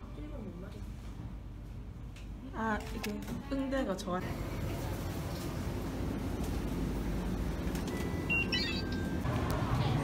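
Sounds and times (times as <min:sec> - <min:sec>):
refrigerator hum: 0:03.6 - 0:10.0
flurry of high beeps: 0:08.0 - 0:09.2.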